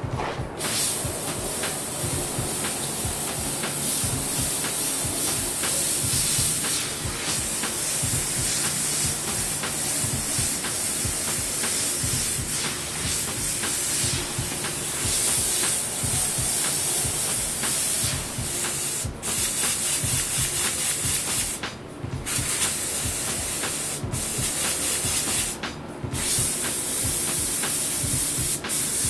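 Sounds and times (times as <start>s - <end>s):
airbrush spraying hiss: 0.0s - 29.0s.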